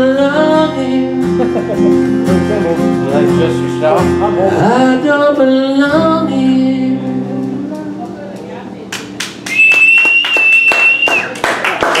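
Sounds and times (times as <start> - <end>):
small audience clapping: 8.9 - 12.0
long high whistle: 9.5 - 11.4.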